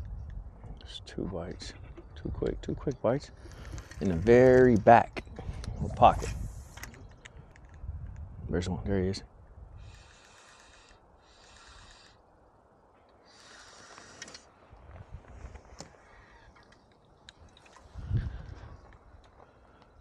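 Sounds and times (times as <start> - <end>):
fishing reel whirring: 9.8 - 12.2, 13.3 - 14.5.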